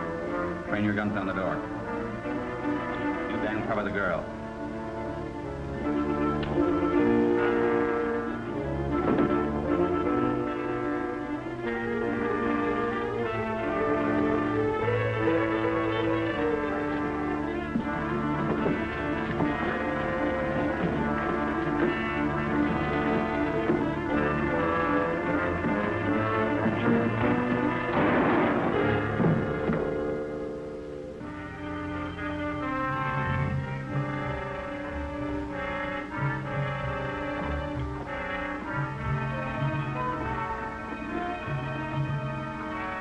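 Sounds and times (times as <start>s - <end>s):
dramatic orchestral music: 0.0s - 43.0s.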